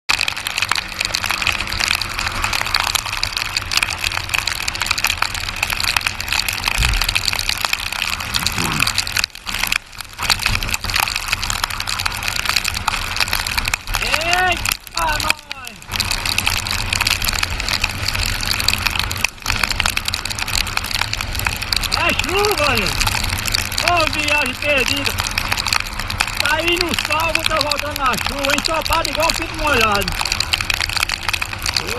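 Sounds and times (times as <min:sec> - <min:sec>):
wind and rain on microphone: 0:00.1 - 0:31.9
rider's voice: 0:14.0 - 0:15.8, 0:21.9 - 0:23.0, 0:23.8 - 0:25.2, 0:26.4 - 0:30.2.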